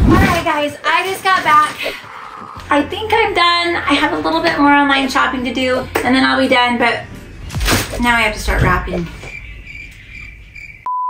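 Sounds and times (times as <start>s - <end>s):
crickets chirping: 8.4s - 10.9s.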